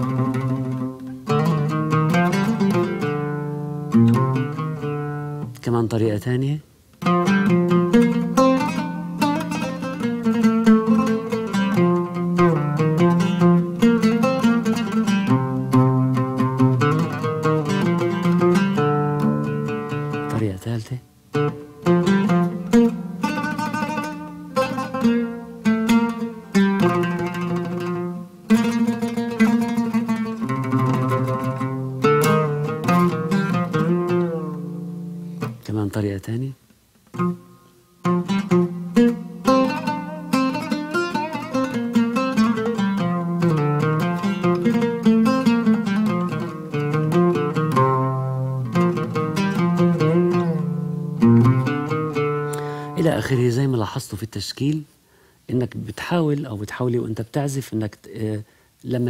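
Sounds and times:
solo oud melody: 0:00.0 - 0:54.9.

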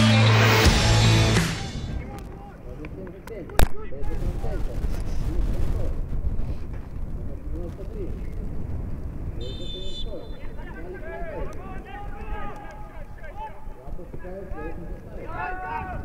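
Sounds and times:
steady low rumble: 0:04.0 - 0:12.2
distant shouts of players: 0:09.4 - 0:16.0.

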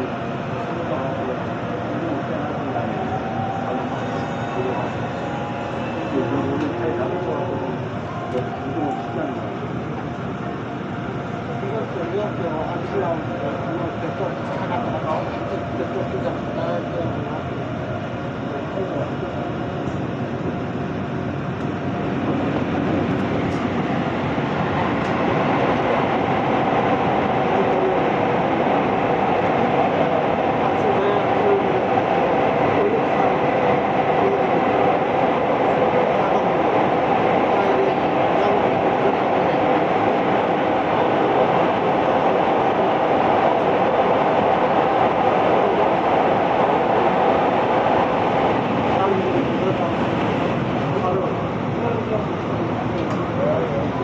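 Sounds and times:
train wheels rumbling on rails: 0:00.0 - 0:54.0.

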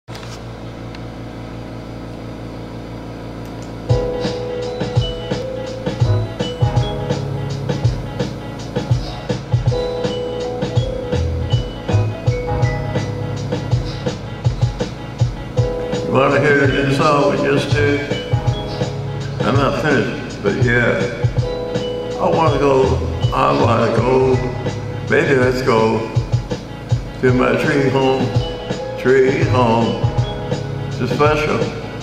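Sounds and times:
keyboard melody: 0:03.8 - 0:32.0
drum beat: 0:03.9 - 0:31.7
soft sustained chords: 0:03.9 - 0:32.0.

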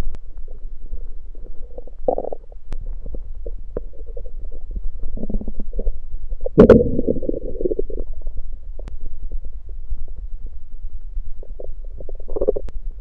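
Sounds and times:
stomach growling: 0:00.0 - 0:10.5, 0:11.2 - 0:12.8
steady low rumble: 0:00.0 - 0:13.0.

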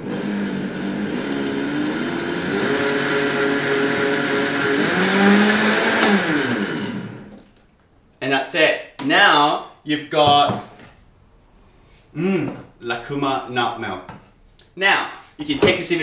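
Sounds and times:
blender motor whine: 0:00.0 - 0:07.4.

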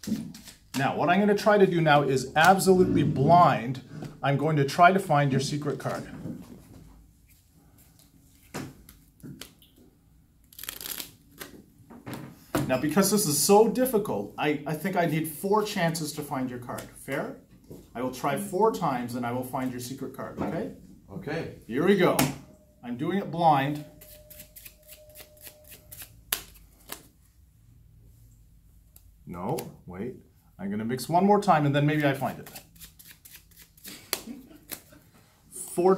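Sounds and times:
cards shuffling: 0:00.0 - 0:00.8, 0:10.4 - 0:11.6, 0:24.0 - 0:27.1, 0:32.0 - 0:35.0
playing cards snapping: 0:10.5 - 0:11.5, 0:24.3 - 0:27.1, 0:32.4 - 0:34.9.

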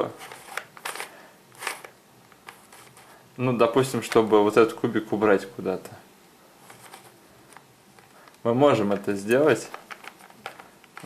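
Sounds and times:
plastic puzzle cube clicking: 0:00.2 - 0:02.9, 0:09.7 - 0:11.0.

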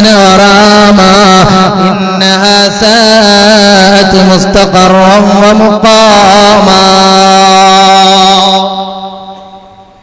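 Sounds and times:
man chanting a long note: 0:00.0 - 0:10.0.

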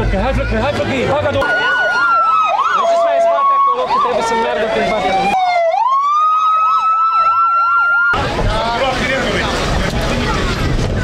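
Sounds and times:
fire engine siren wailing: 0:01.4 - 0:08.6.

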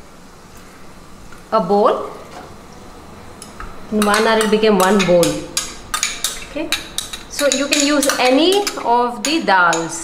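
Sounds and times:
kitchen handling noise: 0:03.4 - 0:10.0.

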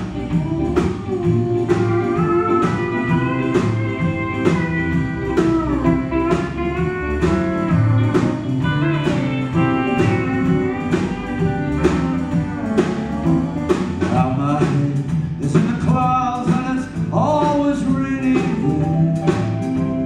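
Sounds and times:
live country band playing: 0:00.0 - 0:20.0
pedal steel guitar bending notes: 0:00.0 - 0:20.0.

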